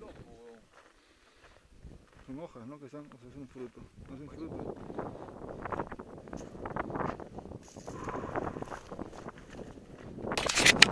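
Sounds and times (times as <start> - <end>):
wind rumble on microphone: 1.7 - 2.2, 3.8 - 10.9.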